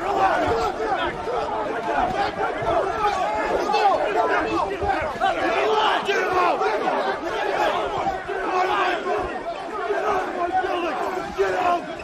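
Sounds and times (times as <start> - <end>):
men shouting in a scuffle: 0.0 - 12.0.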